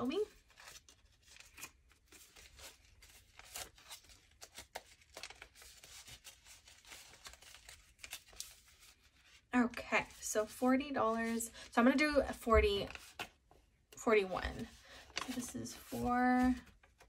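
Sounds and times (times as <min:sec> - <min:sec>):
paper bills rustling: 0:00.1 - 0:09.5, 0:14.4 - 0:17.0.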